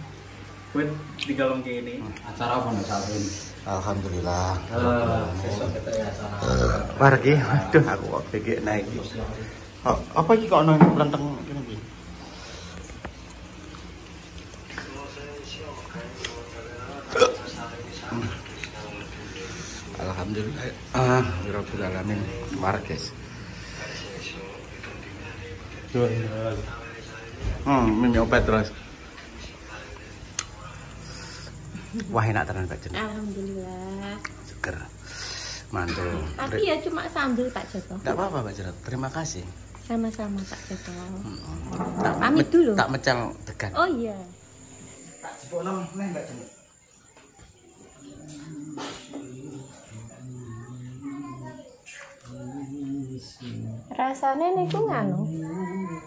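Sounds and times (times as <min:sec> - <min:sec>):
crickets chirping: 0:00.0 - 0:56.0
low conversation: 0:00.0 - 0:56.0.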